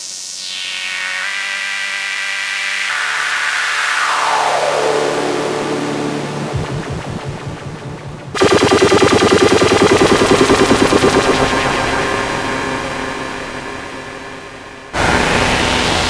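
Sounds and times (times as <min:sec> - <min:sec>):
synthesizer buzzy tone and sweep: 0:03.9 - 0:16.0
synthesizer rattle of pulses: 0:06.2 - 0:15.9
loud fast-pulsing rattle: 0:08.4 - 0:15.3.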